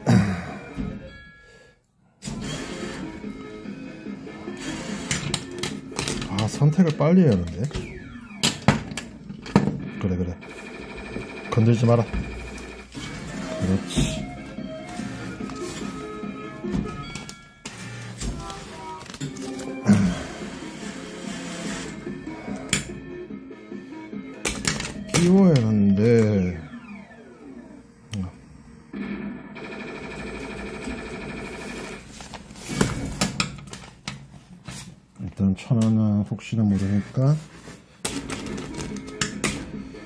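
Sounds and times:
arcade electronic music and jingles: 0:02.6 - 0:08.5, 0:09.9 - 0:28.0
person speaking: 0:13.4 - 0:14.3, 0:25.2 - 0:26.7, 0:35.2 - 0:37.5.

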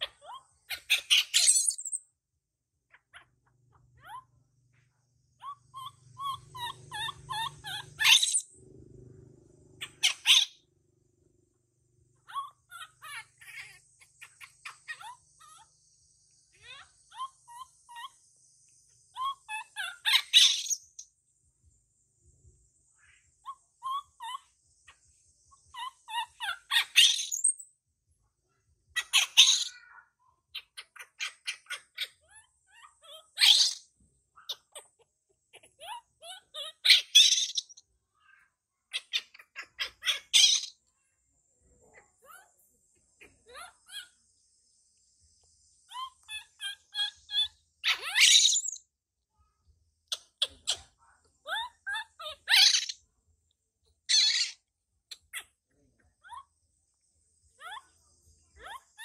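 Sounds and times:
baby monkey screaming: 0:00.0 - 0:02.0, 0:02.9 - 0:04.5, 0:05.3 - 0:08.6, 0:09.7 - 0:10.7, 0:12.2 - 0:18.3, 0:19.0 - 0:21.0, 0:23.0 - 0:27.7, 0:28.9 - 0:41.0, 0:43.2 - 0:44.3, 0:45.9 - 0:48.8, 0:50.0 - 0:53.0, 0:54.0 - 0:56.5, 0:57.6 - 0:59.0
soft chirping calls: 0:00.0 - 0:59.0.

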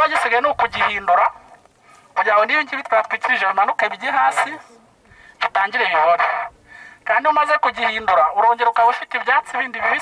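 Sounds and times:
man speaking through megaphone: 0:00.0 - 0:01.4, 0:02.2 - 0:04.7, 0:05.4 - 0:10.0.

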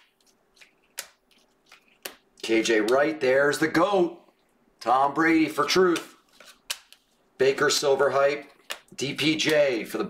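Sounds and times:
cards being flicked through: 0:04.8 - 0:07.2.

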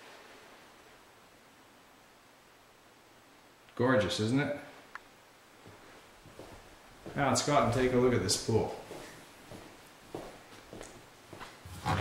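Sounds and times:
soft footsteps on tile floor: 0:05.6 - 0:12.0.

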